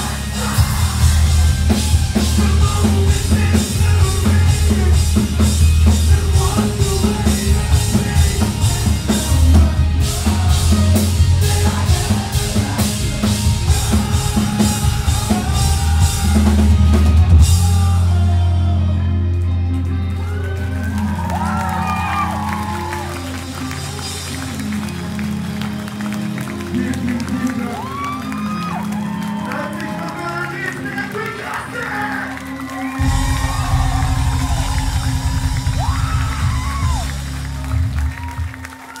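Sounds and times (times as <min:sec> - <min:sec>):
band amplifier notes: 0:00.0 - 0:20.8
crowd cheering and whooping: 0:00.0 - 0:39.0
crowd clapping: 0:19.2 - 0:39.0
low rumble: 0:33.0 - 0:38.0.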